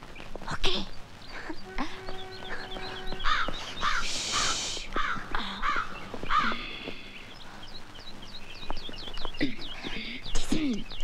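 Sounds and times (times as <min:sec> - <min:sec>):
small birds chirping faintly: 0:00.0 - 0:11.0
crows cawing: 0:01.4 - 0:07.6.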